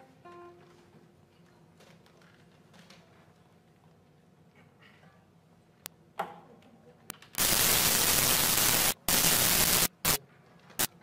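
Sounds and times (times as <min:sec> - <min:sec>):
static crackles: 0:07.3 - 0:10.2
static hiss bursts: 0:07.4 - 0:10.2.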